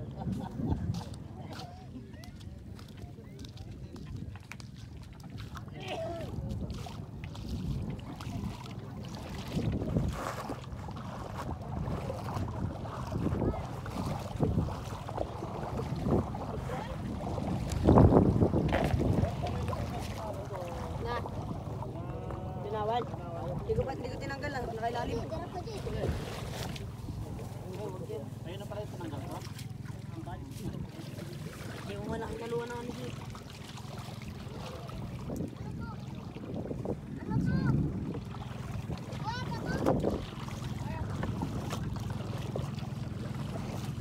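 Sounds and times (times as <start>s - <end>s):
water sloshing: 0.0s - 44.0s
wind rumbling on microphone: 0.0s - 44.0s
people talking indistinctly: 18.3s - 38.0s, 39.1s - 41.3s.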